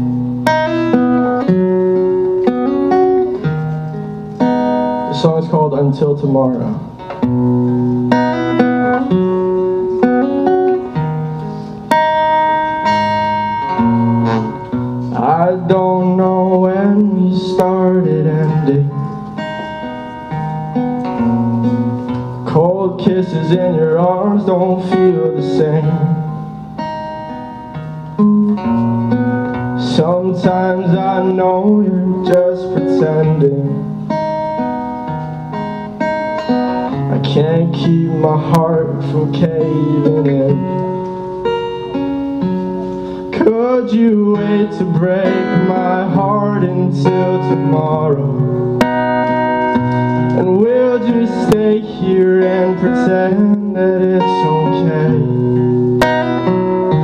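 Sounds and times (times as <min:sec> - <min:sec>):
acoustic guitar chords ringing: 0:00.0 - 0:57.0.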